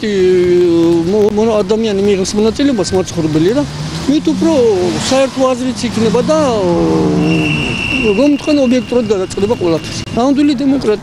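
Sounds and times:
man speaking: 0.0s - 11.0s
high-pitched whine: 6.1s - 8.9s.

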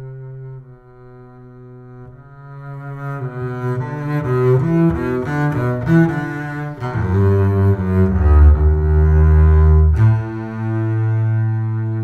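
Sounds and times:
bowed double bass: 0.0s - 12.0s.

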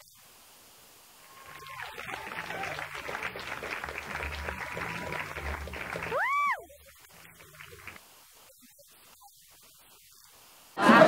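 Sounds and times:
audience applauding: 1.3s - 8.0s.

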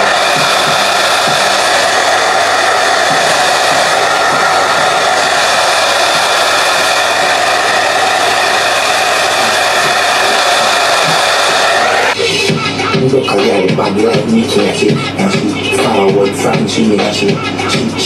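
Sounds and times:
hair dryer running: 0.0s - 12.5s.

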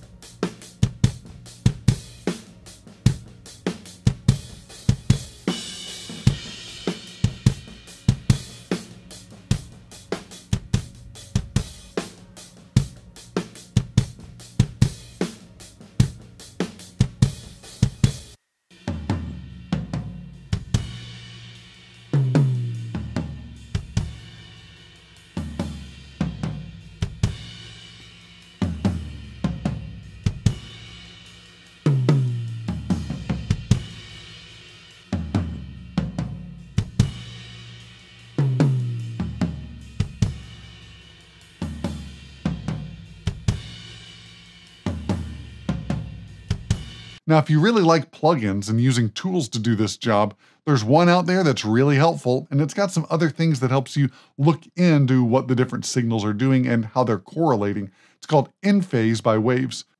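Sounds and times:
drum kit playing: 0.0s - 50.2s, 50.8s - 59.7s.

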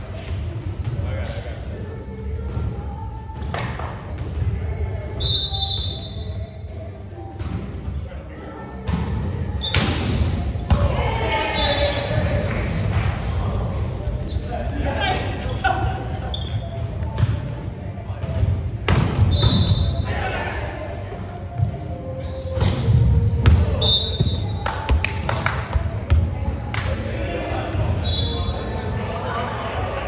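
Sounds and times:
sneakers squeaking on court: 1.8s - 3.0s, 3.9s - 6.3s, 8.5s - 27.0s
players' voices echoing: 6.9s - 30.0s.

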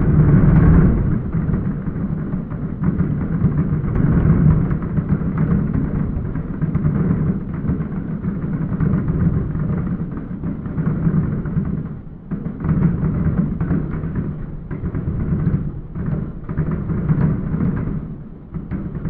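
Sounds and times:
fireworks booming and crackling: 0.0s - 11.3s.

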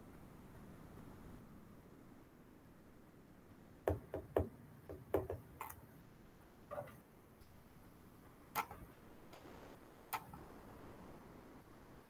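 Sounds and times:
irregular knocks and taps: 3.9s - 5.8s.

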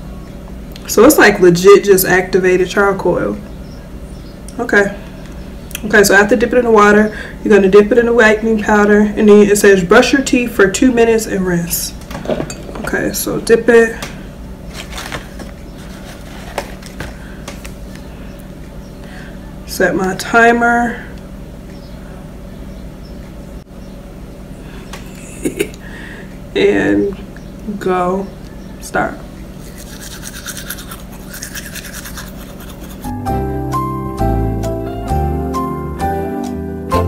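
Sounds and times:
faint steady hum: 0.0s - 33.2s
toothbrush clicking in jar: 29.7s - 33.1s
music: 33.0s - 37.0s.

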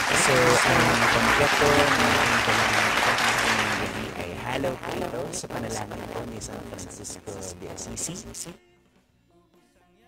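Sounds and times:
low electrical hum: 0.0s - 8.6s
man talking: 0.0s - 8.6s
static hiss: 0.0s - 8.6s.

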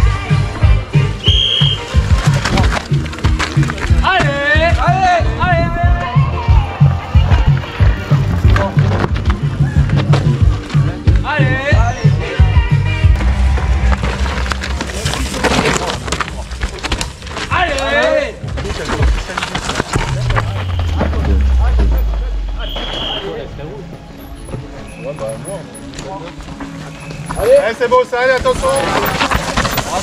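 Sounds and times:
motorcycle engine revving: 19.9s - 23.6s.

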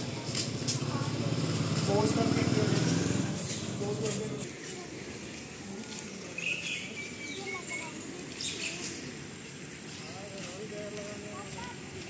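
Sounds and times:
motorcycle engine running: 0.0s - 4.4s.

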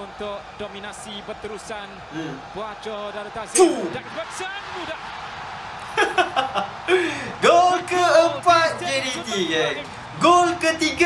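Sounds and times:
stadium crowd noise: 0.0s - 11.0s.

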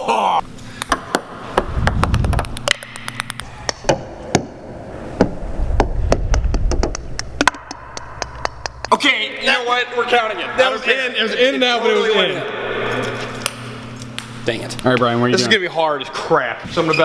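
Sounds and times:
ping-pong balls bouncing: 0.8s - 4.6s, 5.2s - 8.9s
low rumble: 4.6s - 8.9s.

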